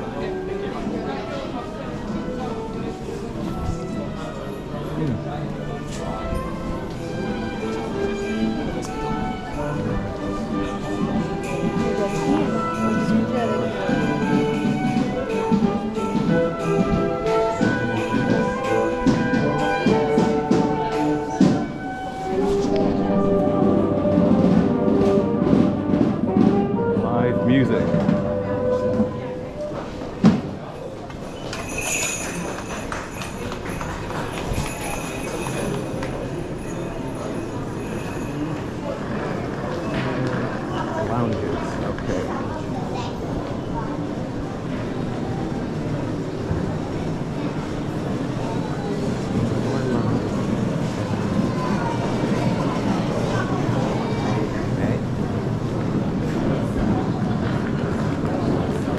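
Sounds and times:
travellers talking indistinctly: 0:00.0 - 0:58.9
wheeled suitcases rolling: 0:00.0 - 0:58.9
brass band playing: 0:05.7 - 0:29.6
drums: 0:11.0 - 0:29.2.

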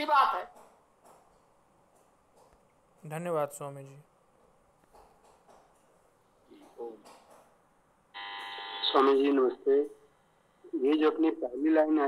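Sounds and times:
man speaking: 0:03.0 - 0:04.1, 0:08.9 - 0:10.0, 0:10.6 - 0:12.0.

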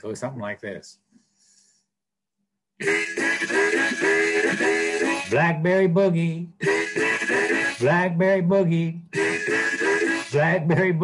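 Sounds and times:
harmonica boogie riff: 0:02.8 - 0:11.0.

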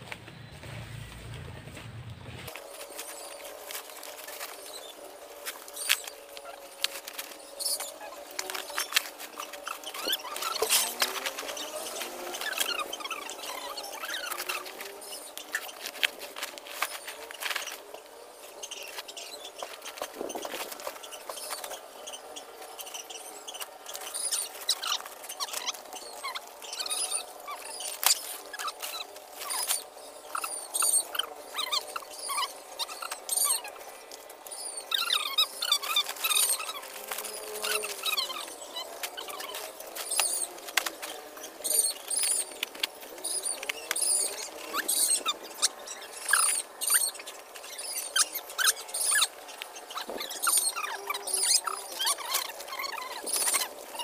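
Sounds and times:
plastic sacks rustling: 0:00.7 - 0:12.7
sticks crackling and snapping: 0:02.5 - 0:13.5, 0:14.2 - 0:17.9, 0:27.8 - 0:29.8, 0:39.0 - 0:41.2.

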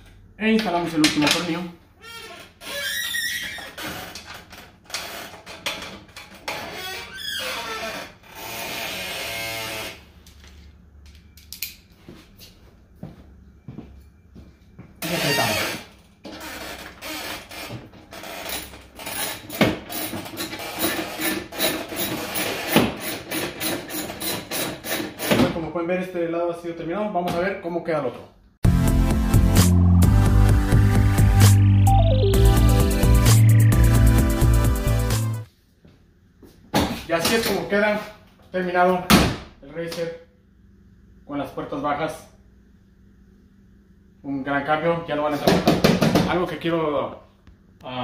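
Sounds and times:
background music with steady beat: 0:28.6 - 0:35.5.

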